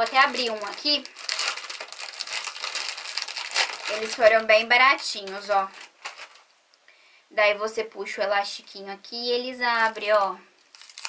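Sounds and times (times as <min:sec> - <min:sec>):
plastic packaging crinkling: 0:00.0 - 0:06.5, 0:09.7 - 0:11.0.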